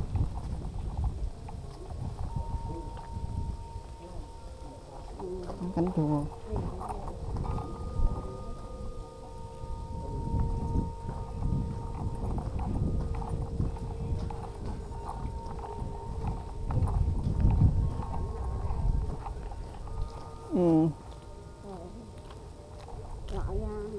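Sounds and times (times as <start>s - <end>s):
footsteps on gravel: 11.0s - 23.9s.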